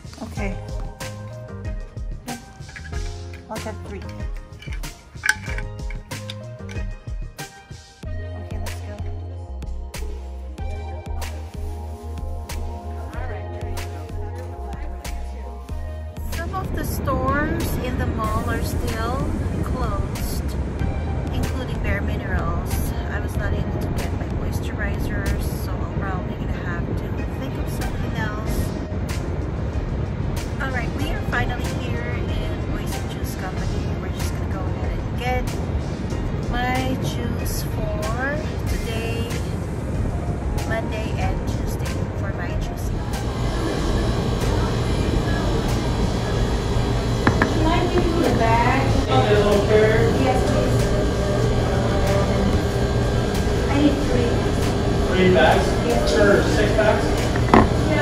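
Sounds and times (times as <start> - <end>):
people talking: 0.0 - 0.7, 3.5 - 4.2, 8.3 - 9.2, 13.0 - 15.5, 16.3 - 20.6, 21.3 - 28.8, 30.6 - 35.6, 36.5 - 39.5, 40.6 - 46.5, 47.3 - 58.0
background music: 0.0 - 58.0
low steady rumble: 8.0 - 58.0.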